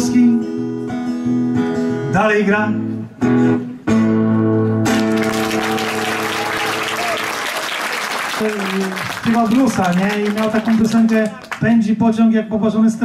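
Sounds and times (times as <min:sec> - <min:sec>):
audience applauding: 0:04.9 - 0:11.8.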